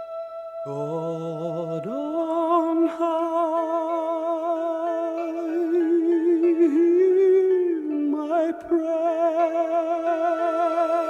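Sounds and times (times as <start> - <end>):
person singing long note: 0.0 - 11.0
soft sustained accompaniment: 0.0 - 11.0.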